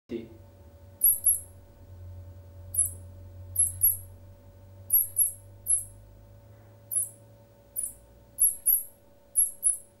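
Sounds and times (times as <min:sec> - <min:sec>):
high-pitched fox call squeaks: 0:01.0 - 0:01.5, 0:02.8 - 0:03.0, 0:03.6 - 0:04.1, 0:04.9 - 0:06.0, 0:06.9 - 0:07.2, 0:07.8 - 0:09.9.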